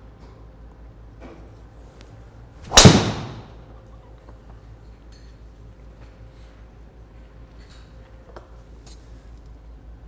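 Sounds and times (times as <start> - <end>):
golf driver striking ball: 2.6 - 3.6.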